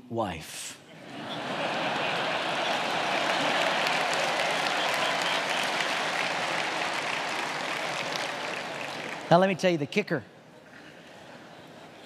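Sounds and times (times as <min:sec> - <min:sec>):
congregation applauding: 0:01.2 - 0:09.7.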